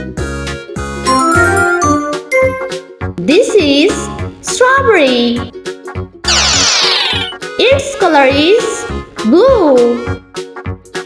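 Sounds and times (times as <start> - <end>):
cheerful children's music: 0.0 - 11.0.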